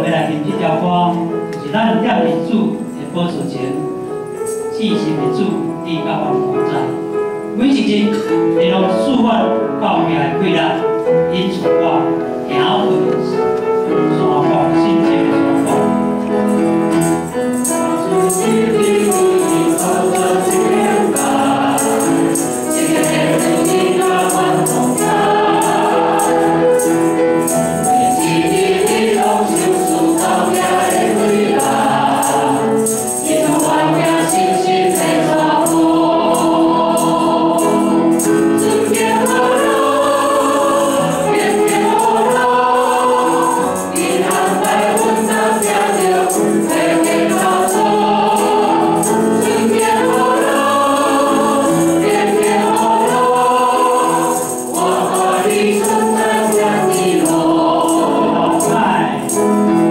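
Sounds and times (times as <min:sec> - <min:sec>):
light percussive rhythm: 0:00.0 - 0:08.6, 0:11.1 - 0:59.9
piano accompaniment: 0:00.0 - 0:59.9
group singing a hymn: 0:12.0 - 0:59.9.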